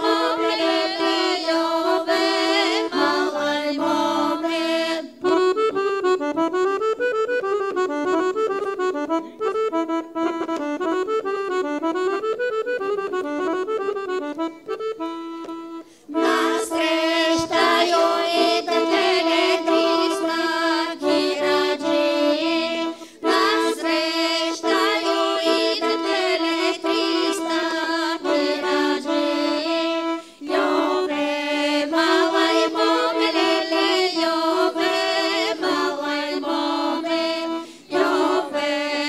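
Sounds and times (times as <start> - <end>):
women singing folk song: 0.0 - 5.4, 16.1 - 39.0
accordion melody: 0.0 - 39.0.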